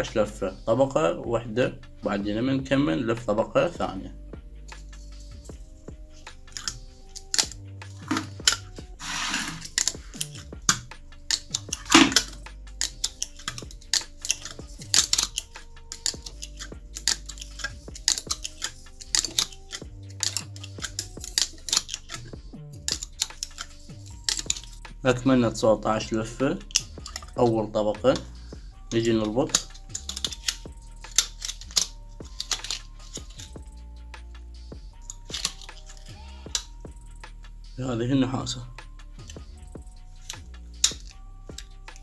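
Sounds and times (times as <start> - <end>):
soft background music: 0.0 - 42.0
wire clicking and scraping: 4.6 - 25.6, 26.3 - 37.6, 38.8 - 42.0.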